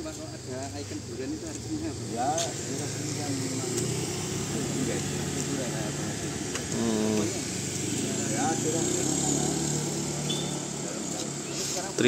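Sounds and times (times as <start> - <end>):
people talking: 0.0 - 12.0
motorbike engine running: 2.5 - 11.4.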